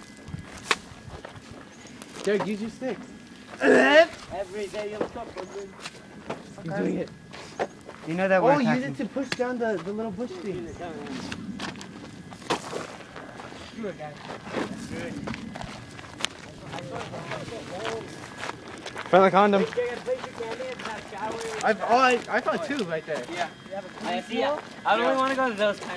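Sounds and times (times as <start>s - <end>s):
footsteps on gravel path: 0.0s - 25.9s.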